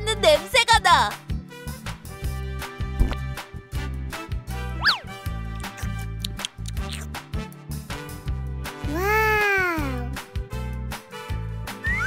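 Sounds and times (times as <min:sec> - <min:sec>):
upbeat background music: 0:00.0 - 0:12.0
character voice saying mmm: 0:08.9 - 0:10.2.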